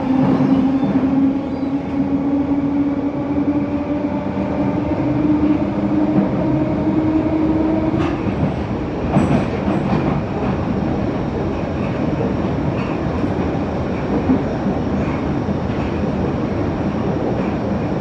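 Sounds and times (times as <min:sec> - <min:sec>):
underground train running: 0:00.0 - 0:18.0.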